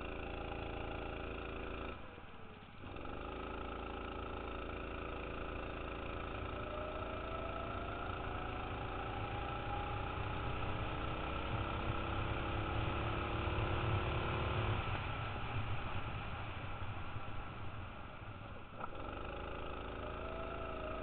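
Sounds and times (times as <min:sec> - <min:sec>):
go-kart engine accelerating: 0:00.0 - 0:21.0.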